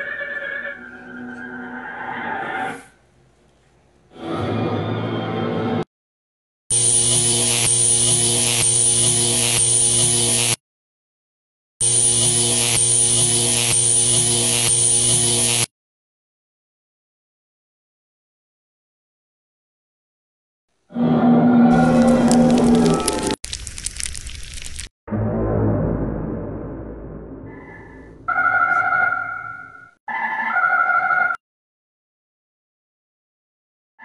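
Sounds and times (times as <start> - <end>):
electric buzzing hum: 6.7 - 10.6, 11.8 - 15.7
crackling static: 21.9 - 24.9.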